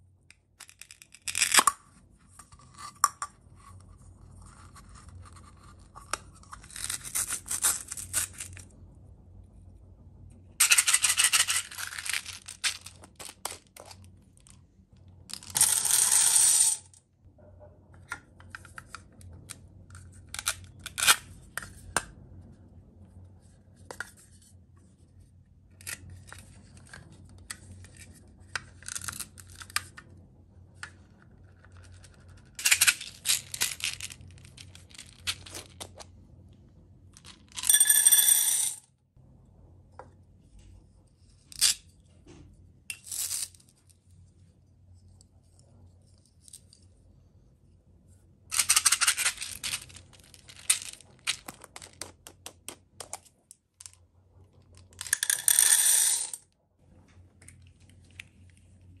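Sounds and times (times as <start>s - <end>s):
plastic toys rattling: 10.6s - 14.1s, 31.7s - 36.0s, 48.5s - 54.0s, 54.7s - 56.4s.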